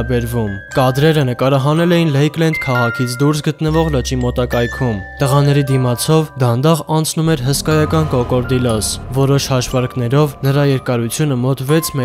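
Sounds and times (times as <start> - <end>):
background music with bell-like notes: 0.0 - 12.0.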